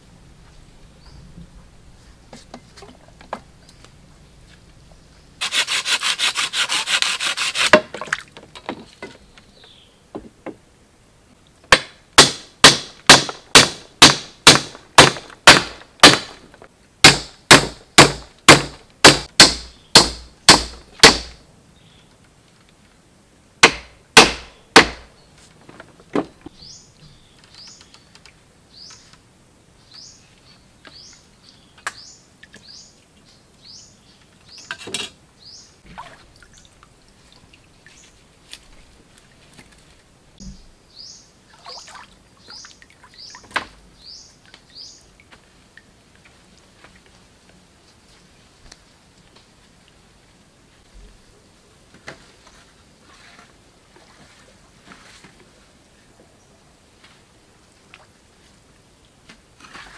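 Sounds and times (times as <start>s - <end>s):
harsh buzzing rasp: 5.4s - 7.7s
wooden stake being hammered: 11.7s - 16.4s, 17.0s - 21.4s, 23.6s - 25.1s.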